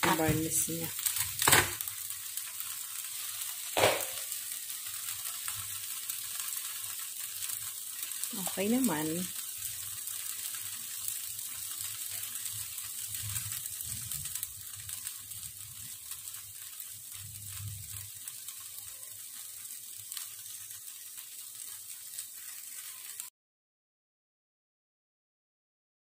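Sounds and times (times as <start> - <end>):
meat sizzling on a grill: 0.0 - 23.3.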